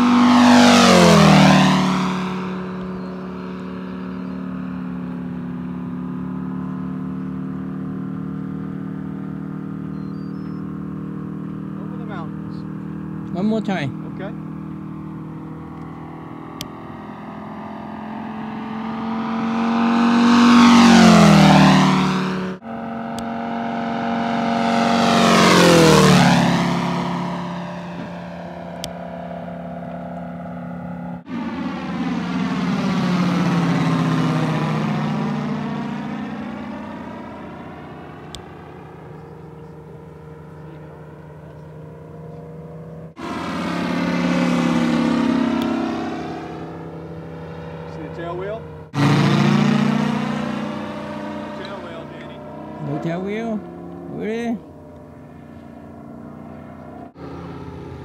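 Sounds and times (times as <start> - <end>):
model plane engine flying past: 0.0 - 58.0.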